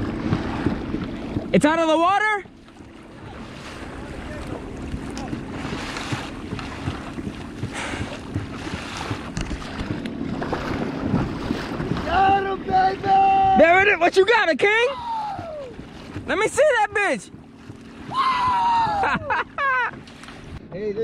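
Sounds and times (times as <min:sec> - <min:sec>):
water sloshing against hull: 0:00.0 - 0:21.0
wind buffeting microphone: 0:00.0 - 0:21.0
man shouting: 0:12.1 - 0:14.0, 0:14.6 - 0:15.8, 0:18.1 - 0:19.2.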